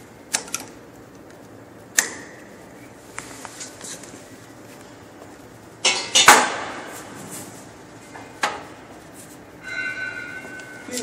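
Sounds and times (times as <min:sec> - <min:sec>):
steady high tone: 0:09.6 - 0:11.0.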